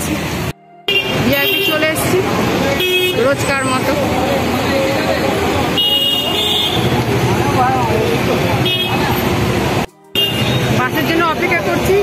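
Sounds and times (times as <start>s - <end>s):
buses and rickshaws running: 0.0s - 12.0s
vehicle horn honking: 0.9s - 3.8s, 5.7s - 7.0s, 8.6s - 9.2s, 10.1s - 11.0s
voices of people: 1.1s - 12.0s.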